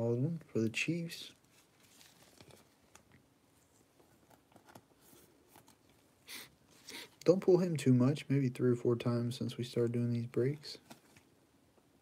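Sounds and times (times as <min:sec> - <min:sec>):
plastic sleeve rustling: 0:01.4 - 0:06.1.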